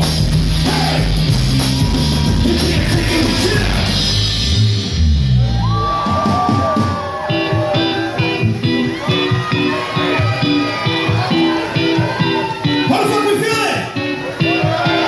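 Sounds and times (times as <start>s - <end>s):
live hip-hop band playing: 0.0s - 15.0s.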